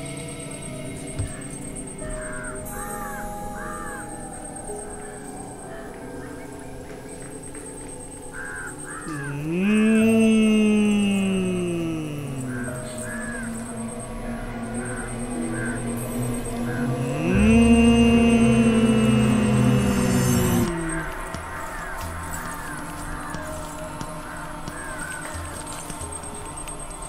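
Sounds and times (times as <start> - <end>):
eerie deep gliding tone: 0.0 - 27.0.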